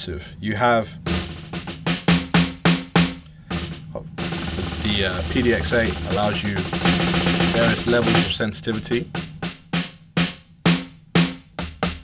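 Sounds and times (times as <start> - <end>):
electronic snare drum hits and roll: 1.0 - 12.0.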